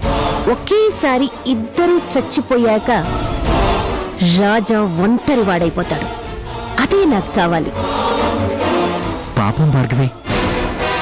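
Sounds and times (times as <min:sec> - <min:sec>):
music with choir-like voices: 0:00.0 - 0:11.0
woman's voice: 0:00.4 - 0:03.2, 0:04.2 - 0:06.2, 0:06.8 - 0:07.8.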